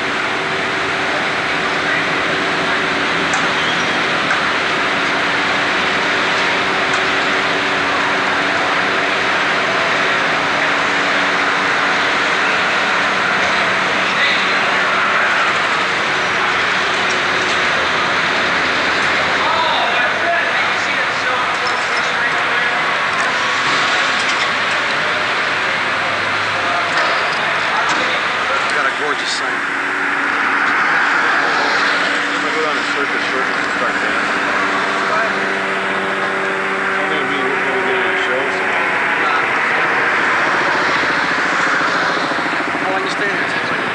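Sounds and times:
indistinct voices: 0.0s - 43.9s
street traffic roar: 0.0s - 43.9s.

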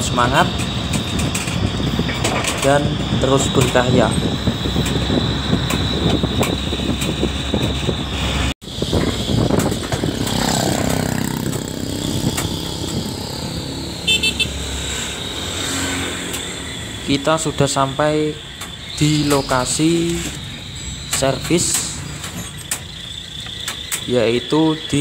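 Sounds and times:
vehicle engine and road noise: 0.0s - 25.0s.

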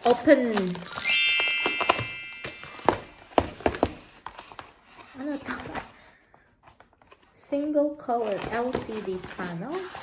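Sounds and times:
bright ringing chime: 0.9s - 3.0s.

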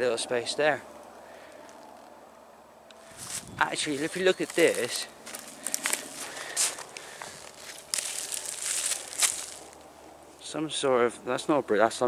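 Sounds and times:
dry leaves and twigs crunching: 2.9s - 10.5s.

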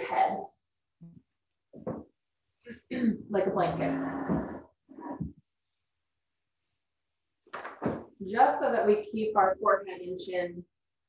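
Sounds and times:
woman speaking: 0.0s - 0.5s, 2.7s - 4.4s, 8.2s - 10.6s.

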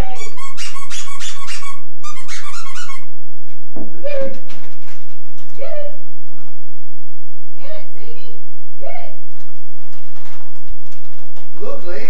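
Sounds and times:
squeaky dog toy squeaking: 0.0s - 3.1s.

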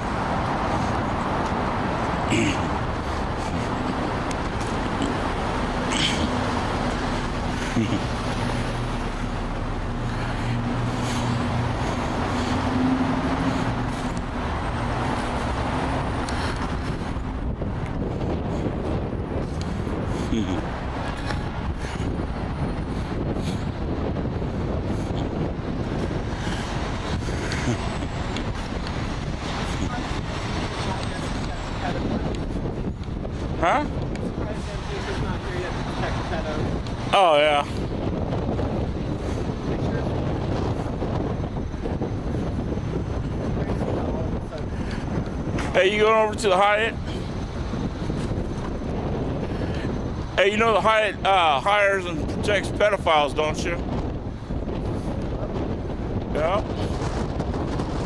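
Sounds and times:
street traffic noise: 0.0s - 58.0s
vehicle engine humming: 0.0s - 58.0s
wind rumbling on microphone: 0.0s - 58.0s.

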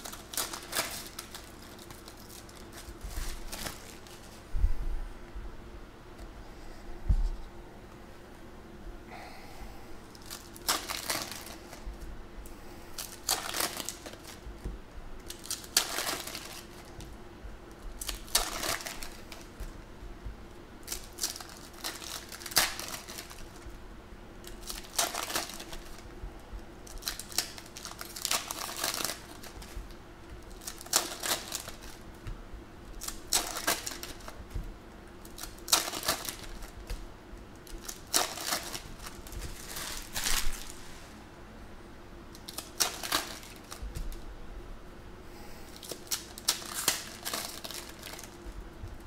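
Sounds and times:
foil wrappers crinkling and tearing: 0.0s - 4.5s, 10.0s - 12.1s, 12.9s - 19.8s, 20.8s - 23.8s, 24.4s - 41.2s, 42.3s - 44.3s, 45.7s - 49.0s.

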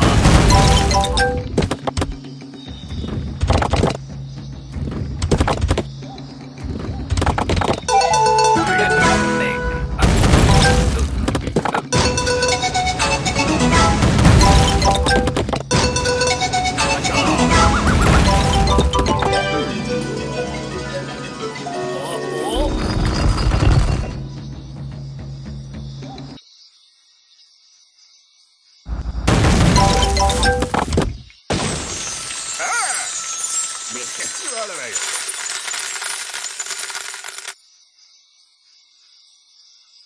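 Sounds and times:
slot game music: 0.0s - 1.6s, 7.9s - 11.2s, 11.9s - 24.5s, 29.8s - 30.8s, 32.3s - 35.3s
stone blocks smashing and tumbling: 0.0s - 2.1s, 10.0s - 12.3s, 14.0s - 16.0s, 17.8s - 19.5s, 22.6s - 24.3s, 29.3s - 37.5s
faint jungle insect ambience: 1.4s - 8.0s, 23.9s - 29.3s, 30.1s - 40.0s
coins clinking: 31.8s - 37.6s.

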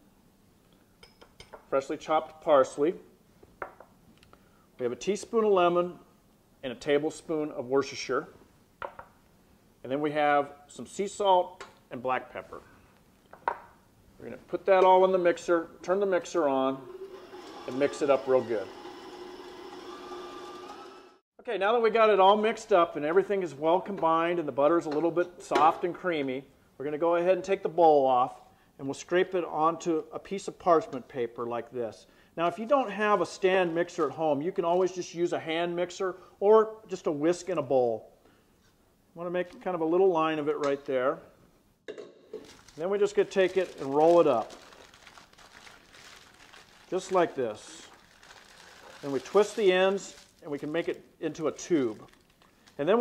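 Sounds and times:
electric stand mixer running: 16.9s - 21.2s
parchment paper rustling: 42.4s - 51.0s, 51.7s - 53.0s.

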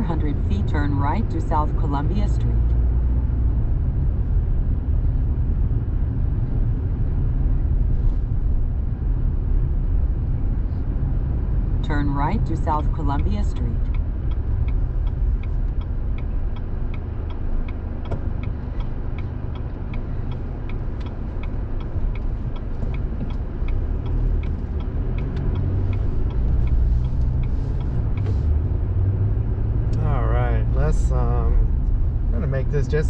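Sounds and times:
car driving rumble: 0.0s - 33.0s
turn signal clicking: 11.4s - 30.0s.

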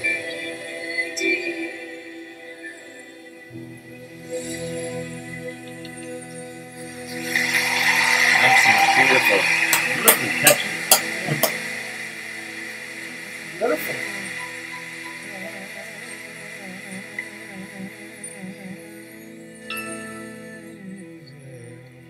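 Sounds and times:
film song with vocal ensemble: 0.0s - 22.0s
sharp percussive hits: 7.4s - 12.0s.

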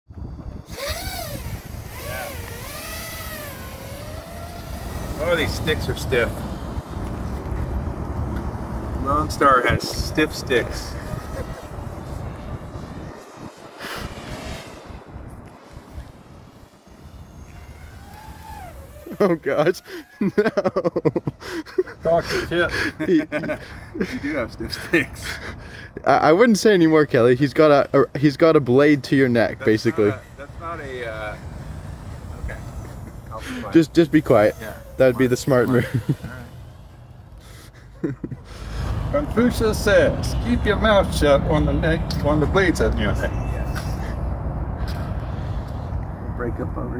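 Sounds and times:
wind on microphone: 0.1s - 19.2s
distant drone motors whining: 0.1s - 23.7s, 27.6s - 43.9s
outdoor background noise: 0.1s - 46.9s.

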